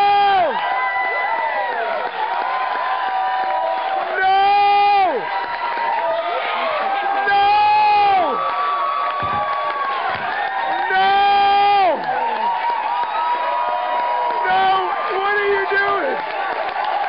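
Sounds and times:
audience screaming and cheering: 0.0 - 17.0.

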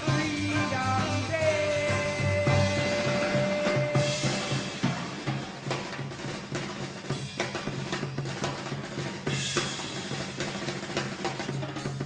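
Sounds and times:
jazz drum kit playing: 0.0 - 12.0.

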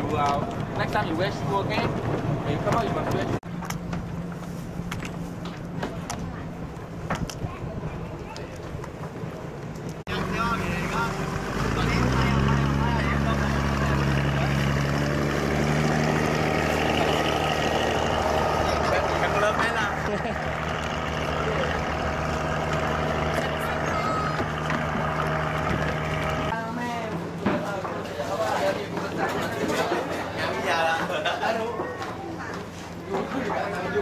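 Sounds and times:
boat engine running: 0.0 - 26.8
voices: 10.1 - 34.0.

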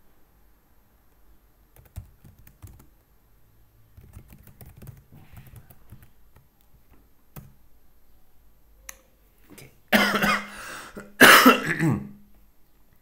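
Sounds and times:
keyboard clicks: 1.8 - 3.0, 4.0 - 7.6
man coughing: 9.9 - 12.2.

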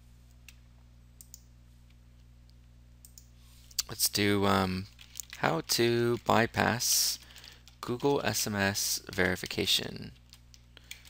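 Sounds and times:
computer clicks: 1.2 - 1.5, 3.0 - 3.9.

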